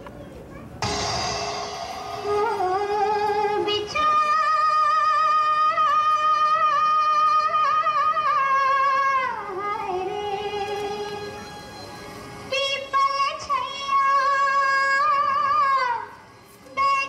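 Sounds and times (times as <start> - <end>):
woman singing film song: 2.2 - 11.2.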